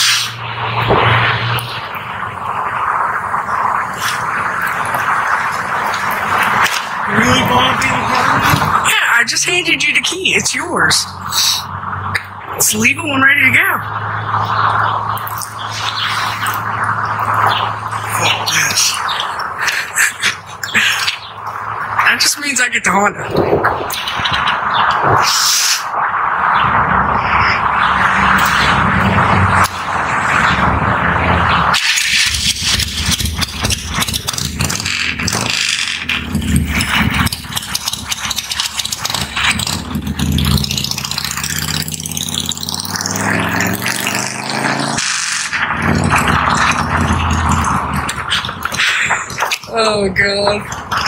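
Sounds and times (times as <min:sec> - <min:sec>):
motorcycle engine revving: 0:26.1 - 0:51.0.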